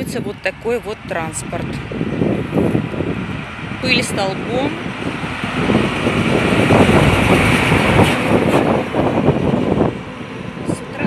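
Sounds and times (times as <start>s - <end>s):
dump truck passing: 0.0s - 11.0s.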